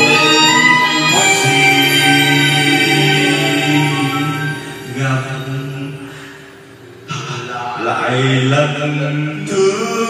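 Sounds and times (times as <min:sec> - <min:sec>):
backing track music: 0:00.0 - 0:10.0
karaoke singing: 0:00.0 - 0:10.0.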